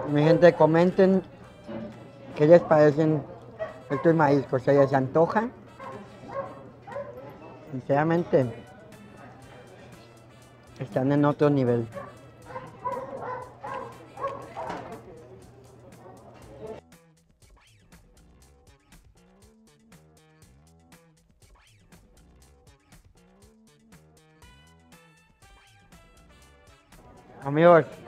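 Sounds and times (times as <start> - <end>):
background music with steady beat: 0.0 - 28.0.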